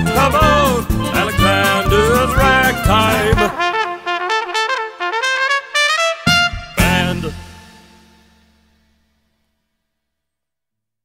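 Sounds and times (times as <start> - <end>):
swing band final chord: 0.0 - 4.4, 6.2 - 8.8.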